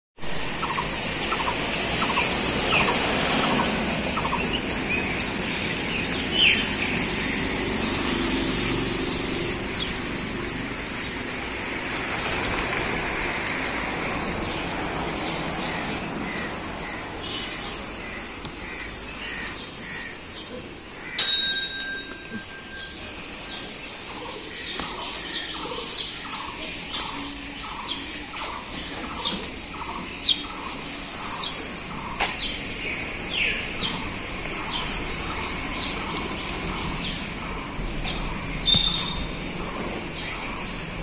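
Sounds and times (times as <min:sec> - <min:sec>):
outdoor background noise: 0:00.2 - 0:41.0
birds chirping: 0:00.3 - 0:41.0.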